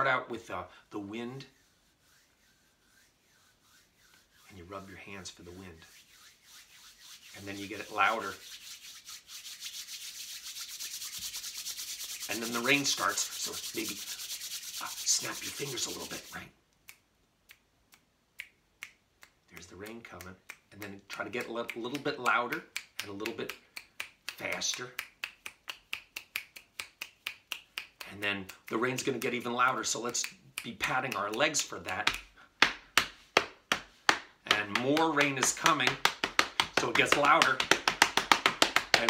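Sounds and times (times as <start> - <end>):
palms rubbing together: 0.4 - 16.6, 19.2 - 39.0
finger snapping: 16.9 - 28.7.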